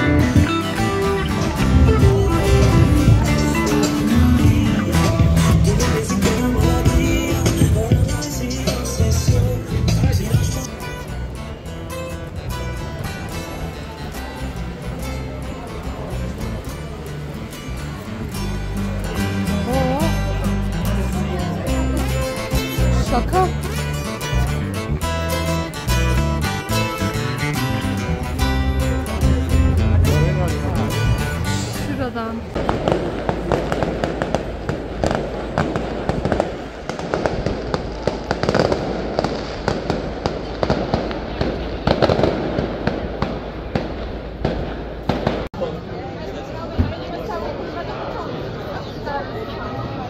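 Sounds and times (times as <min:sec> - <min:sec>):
background music: 0:00.0 - 0:34.3
fireworks banging and crackling: 0:32.5 - 0:45.8.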